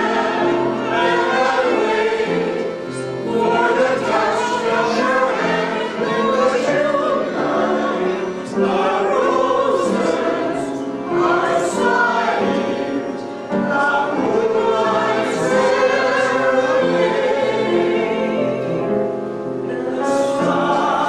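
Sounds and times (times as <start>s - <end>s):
choir singing: 0.0s - 21.0s.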